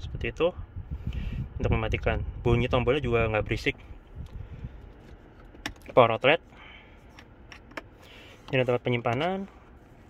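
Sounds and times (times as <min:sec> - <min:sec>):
handling of dashboard controls: 0:04.0 - 0:10.0.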